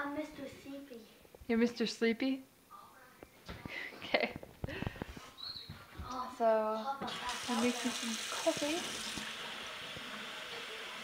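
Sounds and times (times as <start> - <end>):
water running from tap: 7.0 - 11.0.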